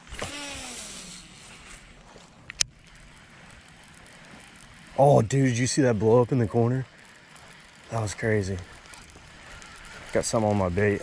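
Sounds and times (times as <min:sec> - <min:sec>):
fishing reel spool whirring: 0:00.0 - 0:11.0.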